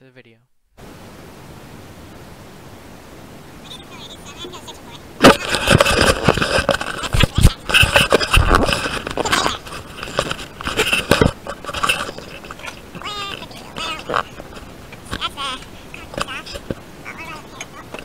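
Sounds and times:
camera handling noise: 5.2 - 16.8
knocks clatters and scraping: 5.2 - 16.8.

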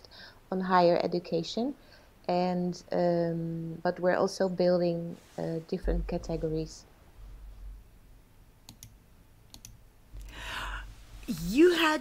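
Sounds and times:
light clicks: 8.7 - 9.8
short breath: 10.2 - 11.0.

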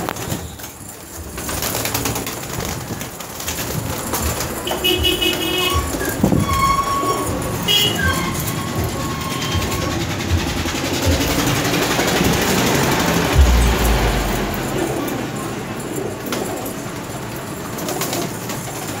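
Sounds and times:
steady rushing noise: 13.3 - 15.6
heavy low thump: 13.4 - 15.4.

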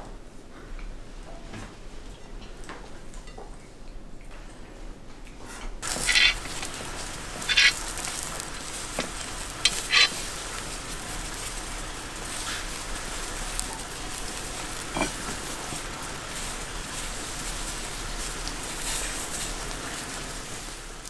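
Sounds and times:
meat sizzling over charcoal: 5.8 - 21.0.

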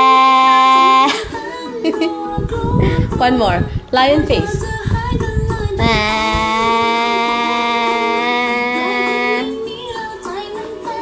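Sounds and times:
woman holding long ahh: 0.0 - 1.4, 5.8 - 9.7.

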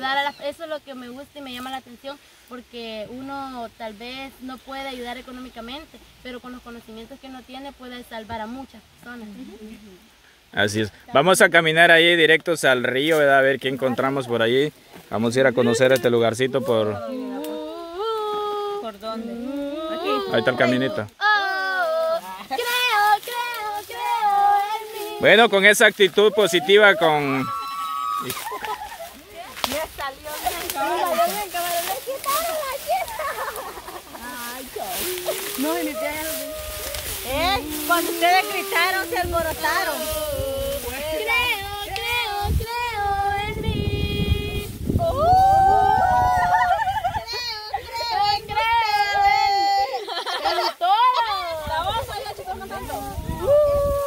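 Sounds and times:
young woman singing unaccompanied: 15.6 - 25.5, 29.7 - 33.1, 34.2 - 45.5, 47.2 - 53.5.

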